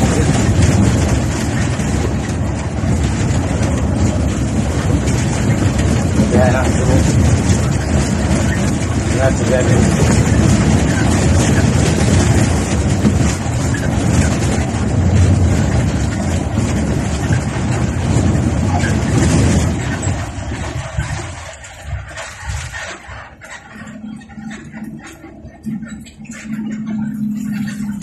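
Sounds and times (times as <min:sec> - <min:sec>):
bus engine and road noise: 0:00.0 - 0:28.0.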